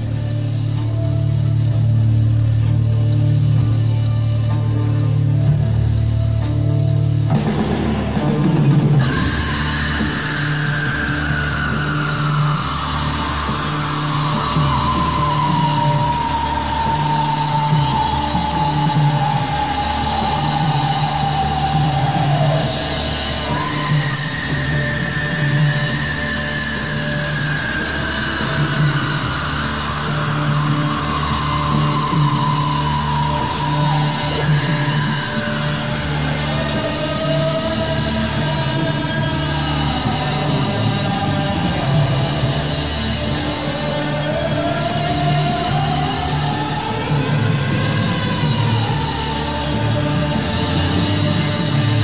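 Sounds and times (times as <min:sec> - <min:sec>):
bass pulsing: 0:00.0 - 0:52.0.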